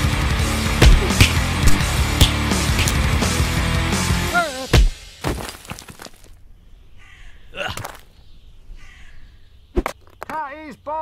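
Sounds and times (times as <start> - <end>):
wordless vocal sound: 0.5 - 3.5.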